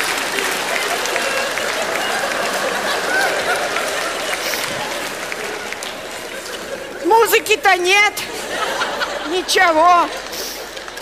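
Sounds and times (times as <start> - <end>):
audience applauding: 0.0 - 11.0
voices from crowd: 0.0 - 11.0.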